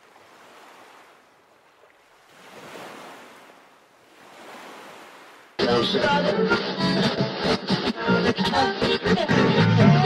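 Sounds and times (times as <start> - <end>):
water waves washing: 0.0 - 5.6.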